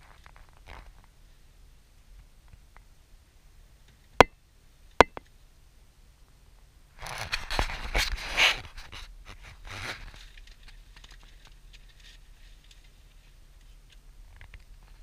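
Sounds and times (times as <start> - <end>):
faint low steady hum: 0.0 - 15.0
close rustling and scraping: 7.0 - 15.0.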